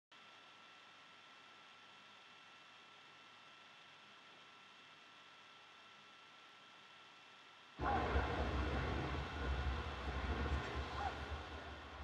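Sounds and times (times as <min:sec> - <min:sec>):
steady low rumble with hiss: 0:07.8 - 0:12.0.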